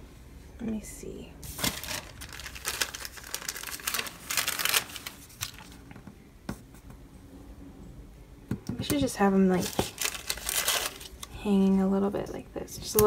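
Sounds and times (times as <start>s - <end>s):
paper stickers rustling: 1.4s - 6.0s, 9.0s - 11.4s.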